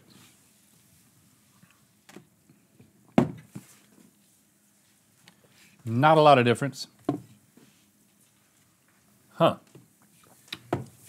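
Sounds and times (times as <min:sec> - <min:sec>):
people sipping drinks: 0:10.0 - 0:10.6.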